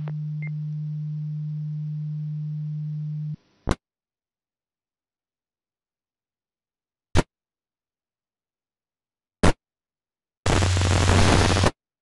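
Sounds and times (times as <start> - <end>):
steady low radio tone: 0.0 - 3.4.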